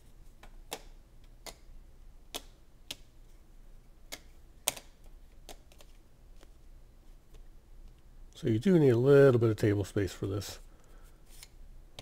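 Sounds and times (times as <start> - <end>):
cardboard tiles clicking on table: 0.4 - 1.7, 2.3 - 3.1, 4.1 - 6.5.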